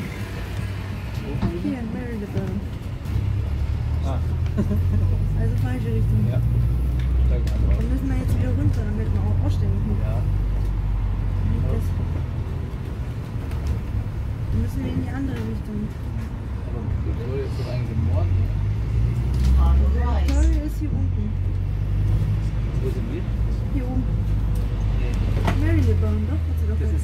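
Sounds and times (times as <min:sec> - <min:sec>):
passengers murmuring: 0:00.0 - 0:10.4, 0:11.2 - 0:18.4, 0:19.5 - 0:27.0
bus engine rumble: 0:00.0 - 0:27.0.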